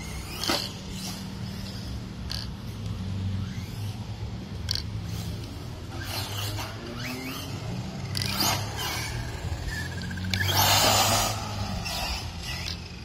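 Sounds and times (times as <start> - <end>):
rc truck motor whining: 0.0 - 13.0.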